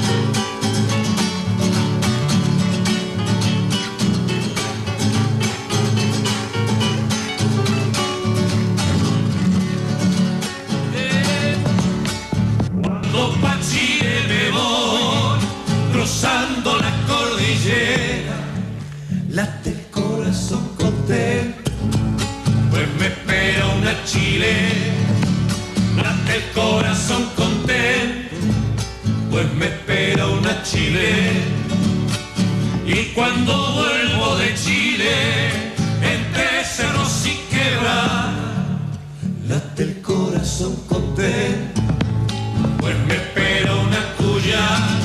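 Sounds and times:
acoustic guitars strummed briskly: 0.0s - 45.0s
men singing in harmony: 10.9s - 11.8s, 12.9s - 18.8s, 19.4s - 21.6s, 22.7s - 25.2s, 26.0s - 28.4s, 29.3s - 31.7s, 32.8s - 38.8s, 39.4s - 41.9s, 42.8s - 45.0s
person singing: 12.8s - 18.6s, 26.0s - 28.4s, 42.8s - 45.0s.

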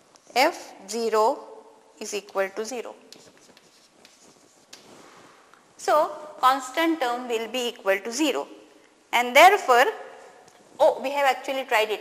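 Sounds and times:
chalk scratching and tapping on blackboard: 3.0s - 5.4s.

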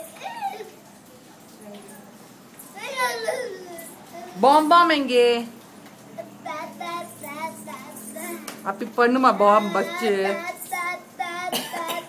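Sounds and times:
toddler vocalizing: 0.0s - 0.8s, 2.8s - 4.4s, 9.3s - 12.0s.

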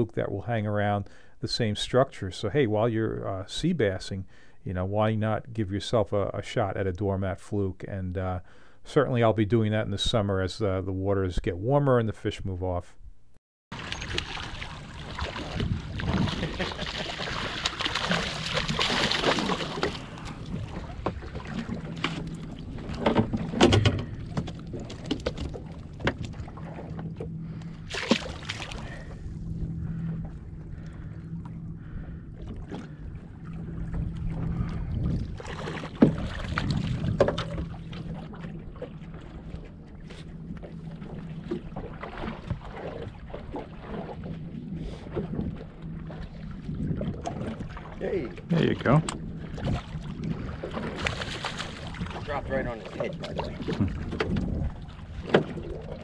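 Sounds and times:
low boat hum: 0.0s - 56.0s
fish splashing at the surface: 13.7s - 20.4s, 27.9s - 29.1s, 50.7s - 52.2s
knocks and clicks of gear: 22.0s - 26.4s.

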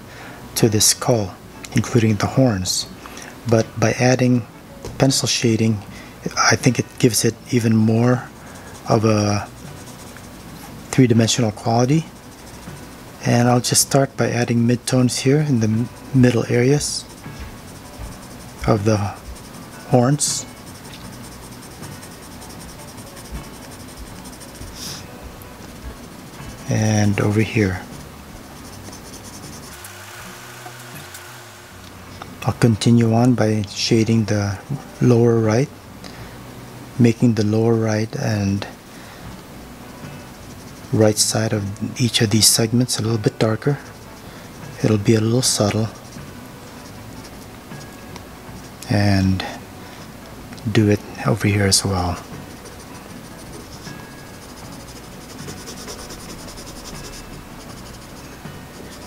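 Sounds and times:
background hiss: 0.0s - 59.0s
pencil scratching on paper: 6.6s - 30.6s, 40.2s - 41.4s, 42.4s - 49.6s, 51.6s - 59.0s.

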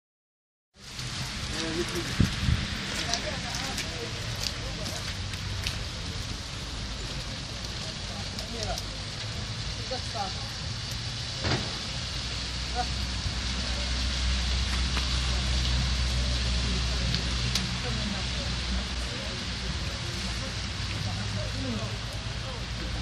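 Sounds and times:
vehicle low rumble: 0.8s - 23.0s.

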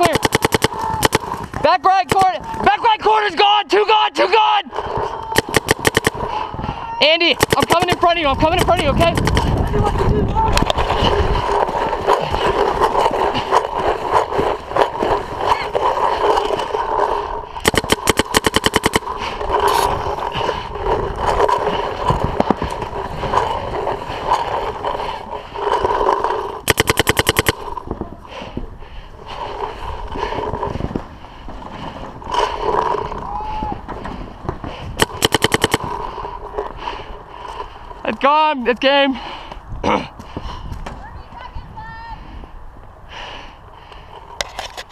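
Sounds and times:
paintball marker firing bursts: 0.0s - 2.5s, 5.4s - 6.5s, 7.2s - 9.6s, 17.1s - 19.8s, 25.6s - 27.8s, 35.0s - 36.2s.

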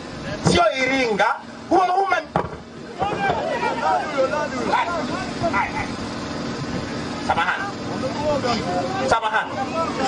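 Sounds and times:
people talking and calling out: 0.1s - 10.0s.

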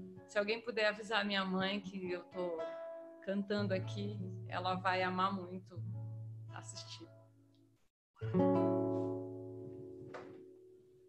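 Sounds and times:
acoustic guitar chord ringing: 8.2s - 11.0s.

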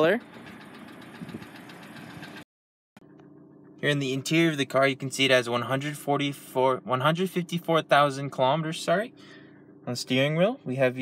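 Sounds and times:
car engine idling: 0.0s - 2.4s.

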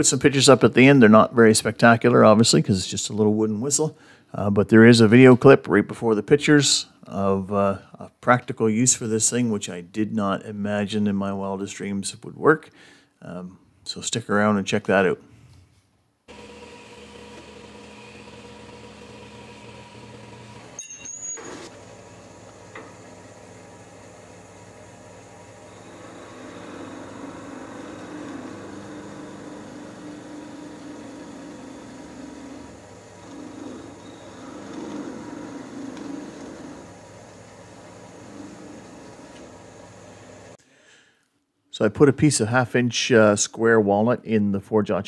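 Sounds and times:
wood lathe motor hum: 16.3s - 20.8s, 21.4s - 40.6s
parting tool cutting wood: 16.3s - 40.6s.

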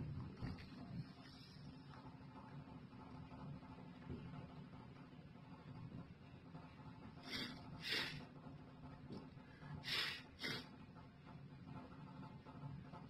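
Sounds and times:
elevator hum: 0.0s - 13.0s
breathy hisses: 7.2s - 8.2s, 9.7s - 10.7s.

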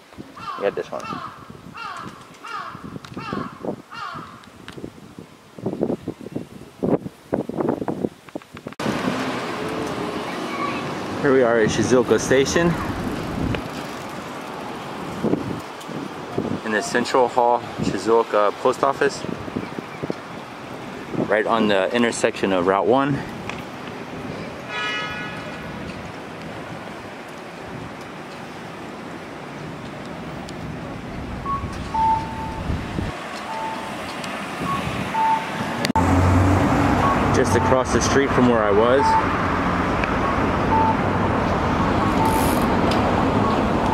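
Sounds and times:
wind on microphone: 1.0s - 17.0s, 19.2s - 21.6s, 29.7s - 37.3s
cars passing: 8.8s - 43.9s
two-tone electronic beeps: 31.4s - 32.7s, 33.5s - 33.9s, 34.6s - 35.5s, 37.0s - 37.9s, 38.9s - 39.3s, 40.2s - 41.0s, 42.1s - 42.6s, 43.4s - 43.9s
traffic hiss: 41.5s - 43.9s.

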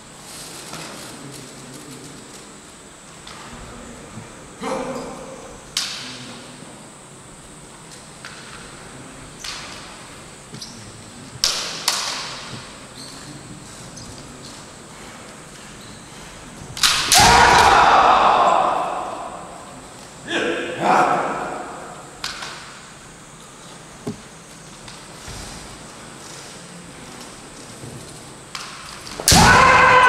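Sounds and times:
bamboo swords clacking: 16.8s - 17.6s
people shouting: 16.8s - 22.2s, 29.2s - 30.0s.

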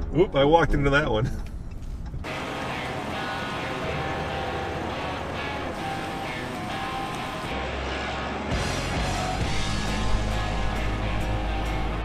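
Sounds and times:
background music: 2.2s - 12.0s.

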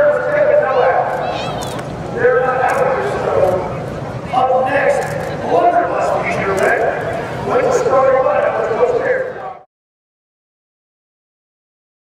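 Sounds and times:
man talking: 0.0s - 1.2s, 2.1s - 9.7s.

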